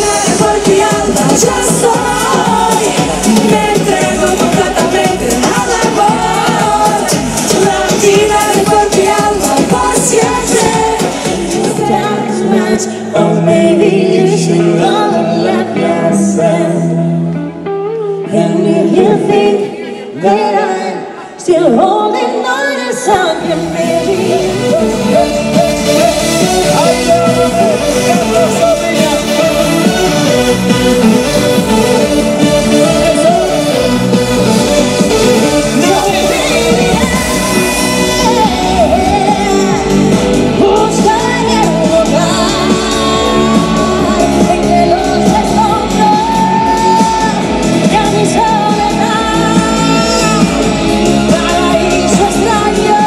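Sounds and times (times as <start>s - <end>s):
pop-rock band playing: 0.0s - 19.7s, 23.1s - 53.0s
vocal group singing in harmony: 0.0s - 53.0s.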